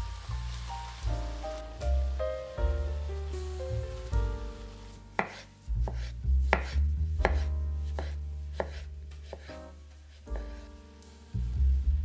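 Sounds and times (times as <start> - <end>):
background music: 0.0 - 12.0
knife slicing on cutting board: 5.2 - 10.7.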